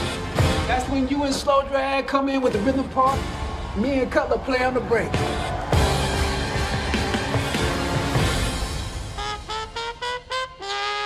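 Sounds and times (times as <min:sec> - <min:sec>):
solo trumpet playing: 0:08.3 - 0:11.0.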